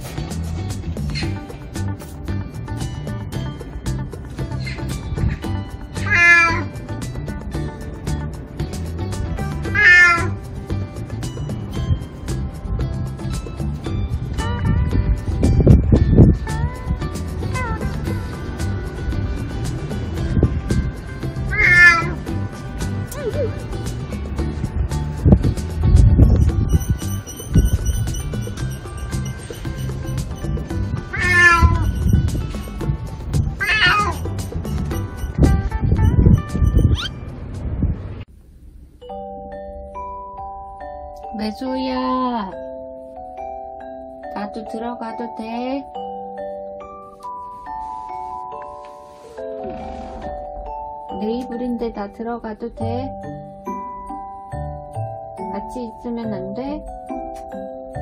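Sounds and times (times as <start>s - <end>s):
cat meowing: 5.9s - 6.7s, 9.6s - 10.4s, 17.4s - 17.9s, 21.5s - 22.2s, 31.1s - 31.9s, 33.6s - 34.3s, 36.9s - 37.2s.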